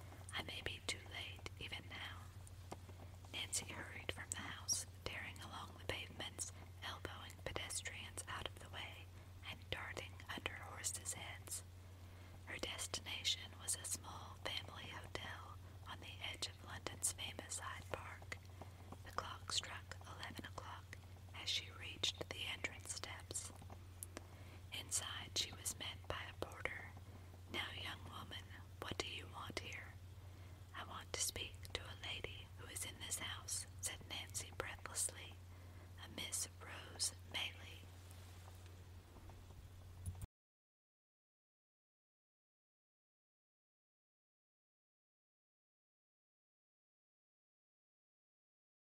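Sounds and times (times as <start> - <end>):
steady low hum: 0.0 - 40.2
person whispering: 0.3 - 2.3, 3.3 - 11.6, 12.5 - 18.4, 19.0 - 23.5, 24.7 - 30.0, 30.7 - 35.4, 36.0 - 37.8.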